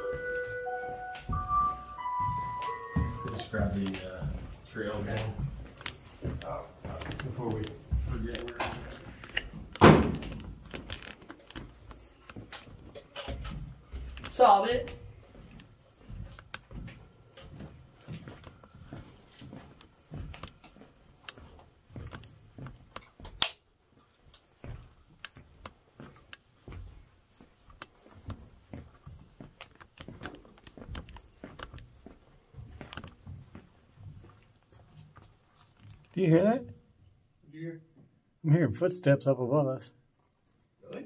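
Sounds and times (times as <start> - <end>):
brief high beep: 0.0 - 3.6
soft footsteps: 0.0 - 37.0.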